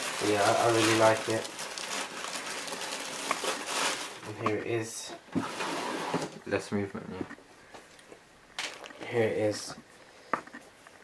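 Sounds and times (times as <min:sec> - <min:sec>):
tissue paper rustling and crinkling: 0:00.0 - 0:04.2.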